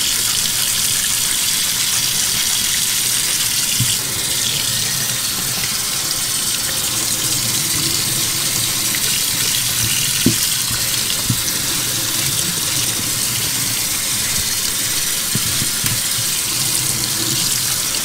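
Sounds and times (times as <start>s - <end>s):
faucet running into sink: 0.0s - 18.0s.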